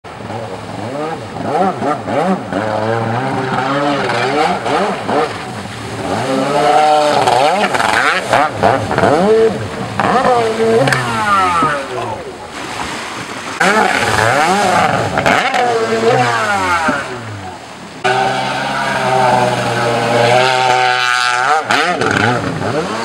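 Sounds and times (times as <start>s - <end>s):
jet ski engine revving: 0.1s - 23.0s.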